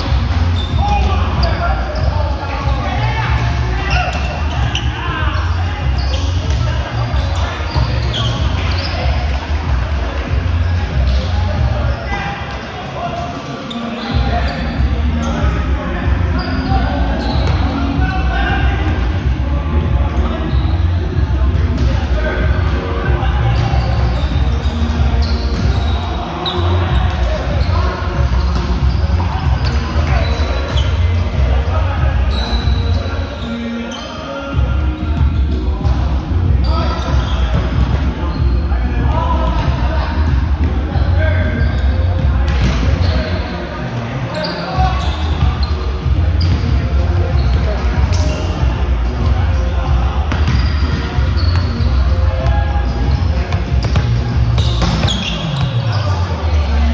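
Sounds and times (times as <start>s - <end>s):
players' voices calling: 0.0s - 56.9s.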